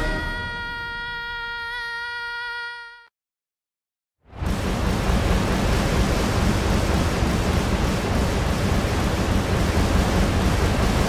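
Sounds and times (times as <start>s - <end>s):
electric crackle rushing noise: 4.3s - 11.0s
low rumble: 4.3s - 11.0s.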